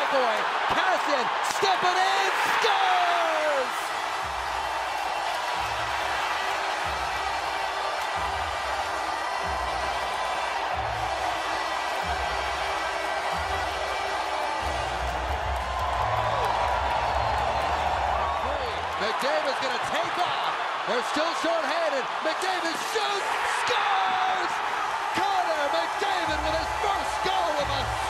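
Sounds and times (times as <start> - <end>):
arena crowd cheering: 0.0 - 28.0.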